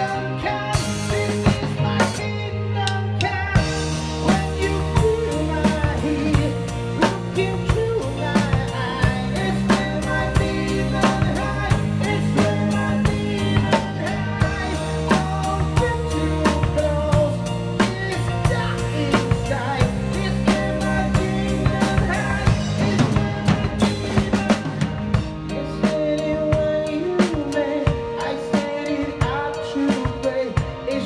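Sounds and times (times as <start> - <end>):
drum kit beat: 0.0 - 31.0
rock band playing: 0.0 - 31.0.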